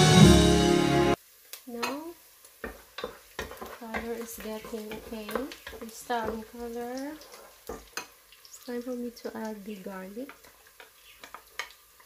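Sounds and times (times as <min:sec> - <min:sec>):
background music: 0:00.0 - 0:01.2
spatula stirring onions in pot: 0:01.8 - 0:12.0
spatula knocking against pot: 0:02.6 - 0:06.6, 0:07.7 - 0:08.1.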